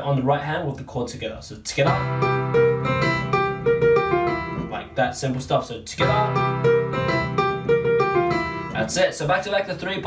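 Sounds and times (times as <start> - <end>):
piano chord and melody: 1.9 - 5.2, 6.0 - 9.0.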